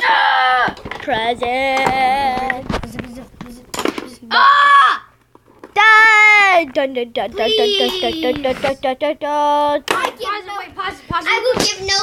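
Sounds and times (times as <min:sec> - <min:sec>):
foosball game clacks and knocks: 0:00.6 - 0:04.2, 0:06.6 - 0:12.0.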